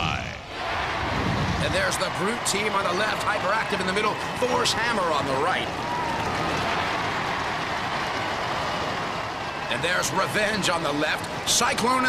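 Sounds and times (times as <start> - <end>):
audience cheering and clapping: 0.5 - 12.0.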